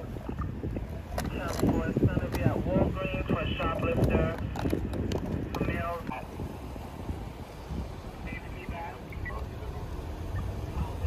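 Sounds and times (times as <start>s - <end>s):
indistinct voices talking: 0.0s - 6.6s, 7.4s - 11.0s
wind rumble on microphone: 0.0s - 11.0s.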